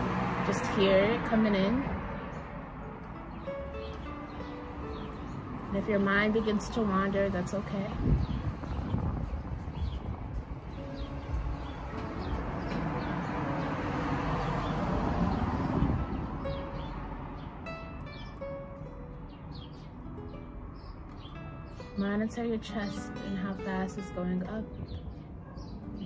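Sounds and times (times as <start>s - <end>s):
soft background music: 0.0s - 26.0s.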